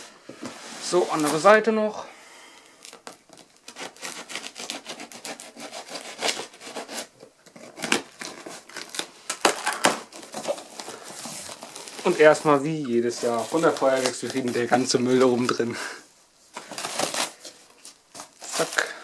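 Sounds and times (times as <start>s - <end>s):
knife slitting packing tape: 2.8s - 10.8s
tape and cardboard crackling: 2.8s - 15.7s, 16.5s - 19.0s.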